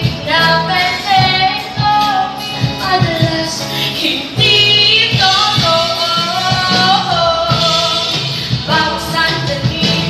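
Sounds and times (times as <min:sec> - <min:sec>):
backing track with steady beat: 0:00.0 - 0:10.0
vocal group singing pop song: 0:00.0 - 0:10.0.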